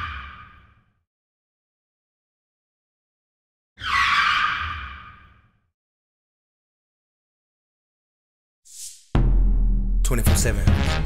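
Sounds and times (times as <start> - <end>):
low rumble: 9.2 - 11.0.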